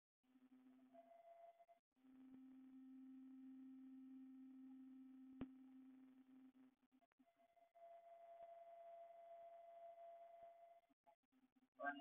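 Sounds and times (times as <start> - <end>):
faint low hum with overtones: 2.1 - 6.6.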